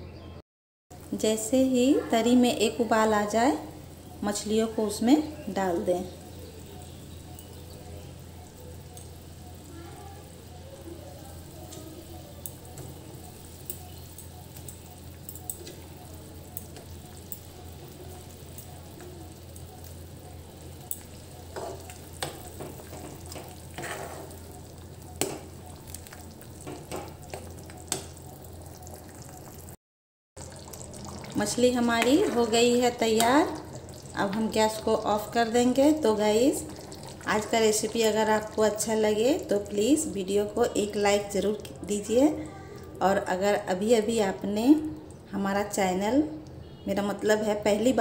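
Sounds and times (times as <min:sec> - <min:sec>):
gravy simmering with hiss: 0:00.9 - 0:29.8, 0:30.4 - 0:45.3
spatula scraping pan: 0:21.6 - 0:24.4.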